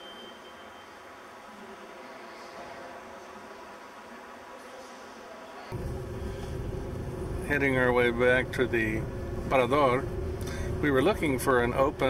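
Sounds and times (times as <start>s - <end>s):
car engine and tyres rumbling: 5.7s - 12.0s.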